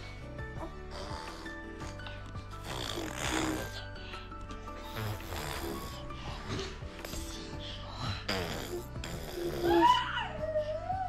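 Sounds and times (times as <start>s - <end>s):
soft background music: 0.0s - 11.0s
baby breathy vocal noise: 0.6s - 9.9s.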